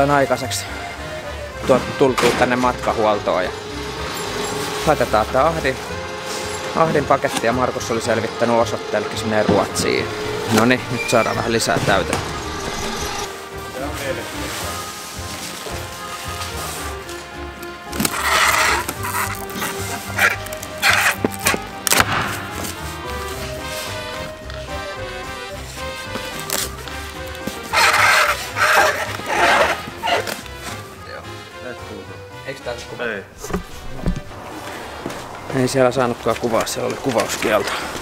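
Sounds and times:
background music: 0:00.0 - 0:38.0
packing tape pulled off dispenser: 0:15.4 - 0:24.2, 0:26.2 - 0:30.8.

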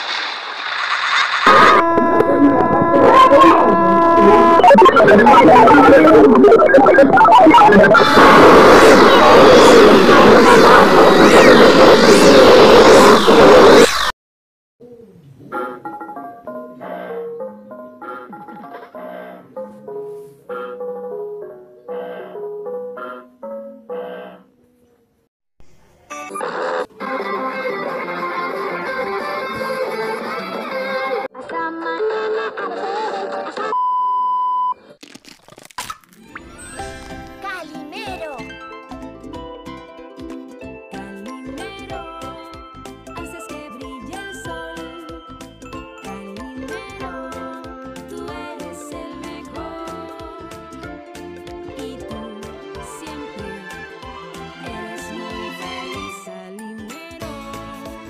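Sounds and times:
distorted glitch music: 0:01.4 - 0:14.1
steady electronic beep: 0:01.5 - 0:13.9
music: 0:15.4 - 0:24.3, 0:26.1 - 0:31.9, 0:36.3 - 0:58.0.

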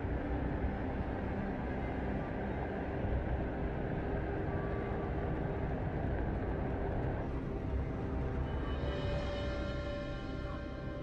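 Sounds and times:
rain: 0:00.0 - 0:11.0.

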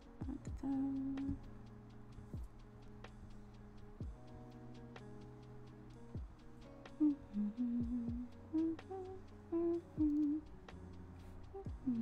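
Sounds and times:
background music with beat: 0:00.0 - 0:12.0
person humming: 0:00.2 - 0:01.4, 0:07.0 - 0:10.4, 0:11.5 - 0:12.0.

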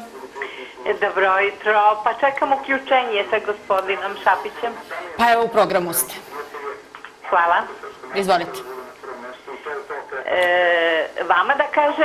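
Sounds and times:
woman speaking over telephone: 0:00.8 - 0:06.3, 0:07.2 - 0:08.8, 0:09.9 - 0:12.0.

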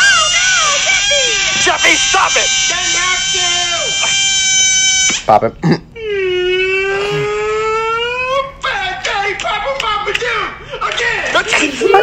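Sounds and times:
excited whining voice: 0:00.0 - 0:04.0, 0:06.0 - 0:09.1
balloon squealing: 0:00.0 - 0:05.2, 0:06.0 - 0:08.5.

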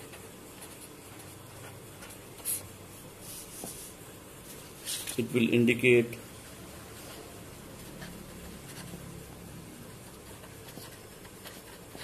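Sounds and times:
marker scratching on whiteboard: 0:00.0 - 0:04.0, 0:06.9 - 0:09.3, 0:09.9 - 0:12.0.

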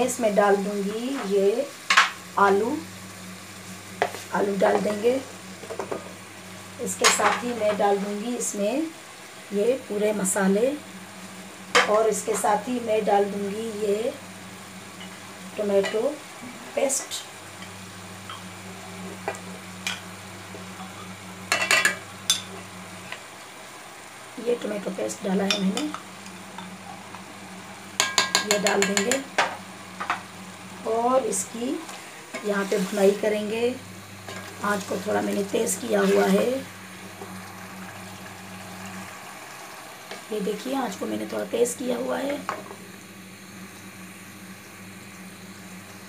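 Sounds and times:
food sizzling in oil: 0:00.0 - 0:46.0
low steady hum: 0:00.0 - 0:46.0.

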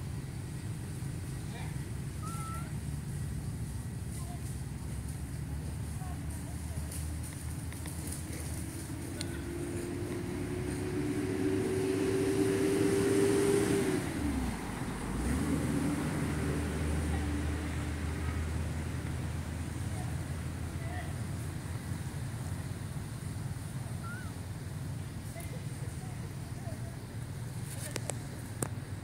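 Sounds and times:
motor vehicle passing by: 0:00.0 - 0:29.0.

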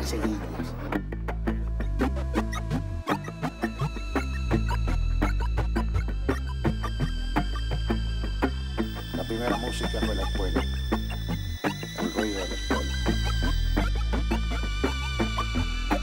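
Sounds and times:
held synthesizer tones: 0:00.0 - 0:16.0.

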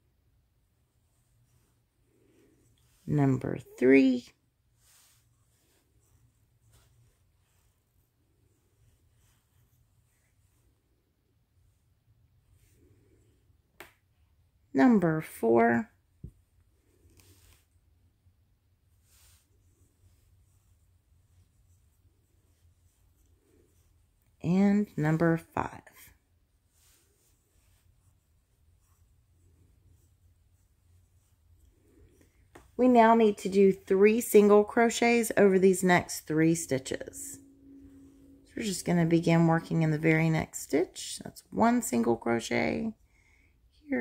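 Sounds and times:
yarn rustling softly: 0:00.0 - 0:44.0
low hum: 0:16.3 - 0:41.5.

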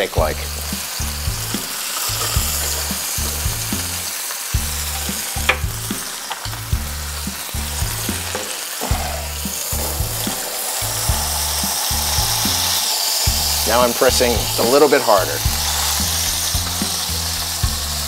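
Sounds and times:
mushrooms sizzling in oil: 0:00.0 - 0:18.0.

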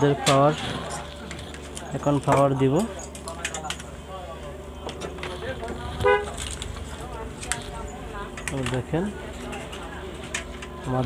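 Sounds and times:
steady low hum: 0:00.0 - 0:11.0
vehicle horn toot: 0:06.0 - 0:06.5.

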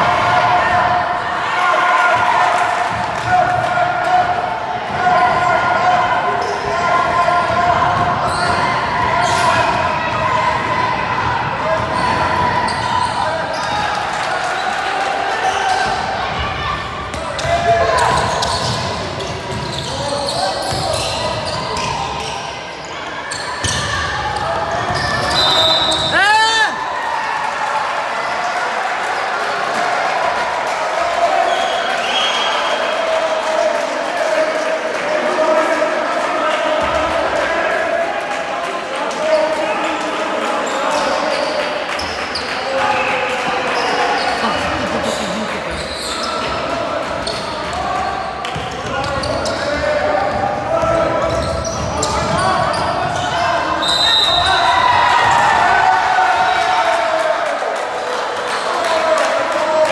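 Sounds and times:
overlapping voices in a gym: 0:00.0 - 0:59.9.

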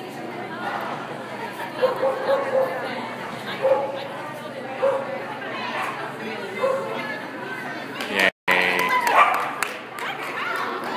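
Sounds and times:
people chattering indoors: 0:00.0 - 0:10.9
dog barking: 0:01.8 - 0:02.8, 0:03.6 - 0:04.0, 0:04.8 - 0:05.1, 0:09.1 - 0:09.6.

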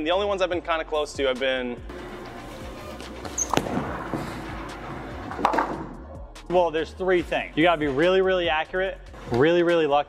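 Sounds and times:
background music: 0:00.0 - 0:10.0
bowling ball rolling: 0:02.0 - 0:06.0
bowling ball thud: 0:03.4 - 0:06.0.

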